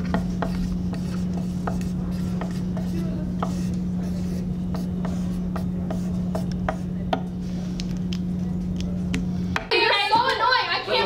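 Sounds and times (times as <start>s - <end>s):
marker writing on desk: 0.0s - 8.0s.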